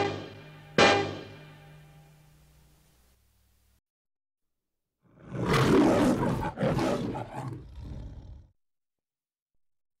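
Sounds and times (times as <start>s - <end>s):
lion roaring and growling: 5.1s - 8.5s.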